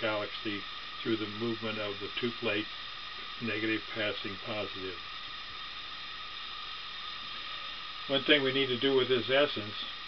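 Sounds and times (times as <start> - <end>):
recording noise hiss: 0.0 - 10.0.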